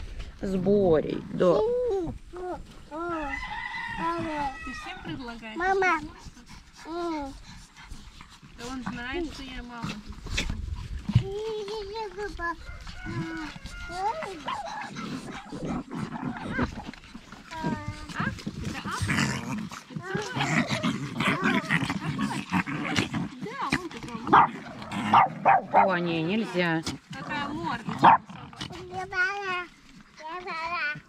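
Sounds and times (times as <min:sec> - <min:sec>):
small dogs barking: 0:13.7 - 0:16.7, 0:24.2 - 0:26.0, 0:28.0 - 0:28.4.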